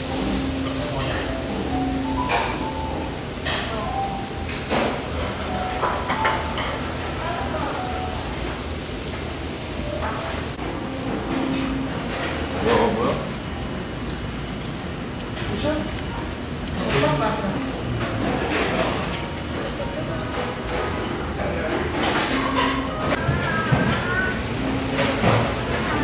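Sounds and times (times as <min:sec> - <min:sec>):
dishes and utensils clinking: 0:00.2 - 0:06.8, 0:18.0 - 0:26.0.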